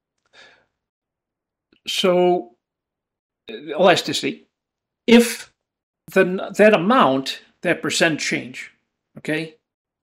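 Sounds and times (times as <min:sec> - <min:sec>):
person breathing out: 0:00.3 - 0:00.8
man speaking: 0:01.9 - 0:02.6, 0:03.5 - 0:09.7.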